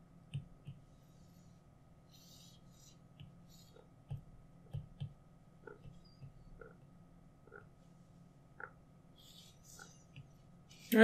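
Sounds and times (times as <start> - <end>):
stylus scratching on tablet: 0.9 - 3.9, 9.2 - 11.0
person speaking: 10.8 - 11.0.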